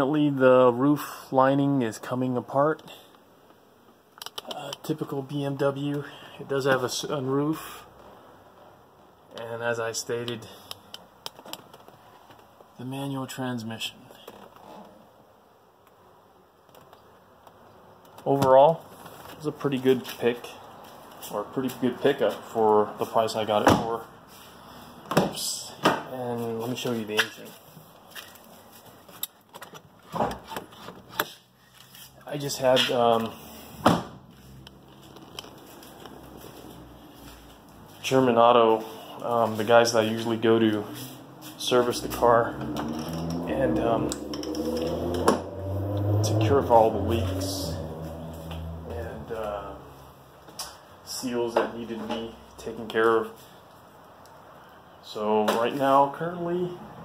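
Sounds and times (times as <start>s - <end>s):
man's voice: 32.2s - 33.4s, 38.0s - 42.8s, 43.4s - 44.2s, 46.2s - 47.9s, 48.9s - 49.9s.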